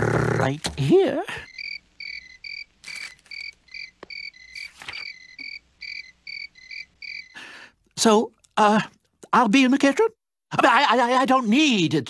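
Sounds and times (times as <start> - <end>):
crickets chirping: 1.2 - 7.7.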